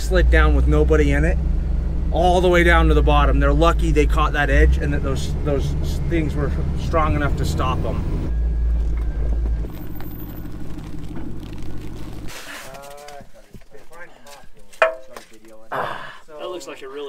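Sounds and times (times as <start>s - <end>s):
truck engine running: 0.0s - 12.3s.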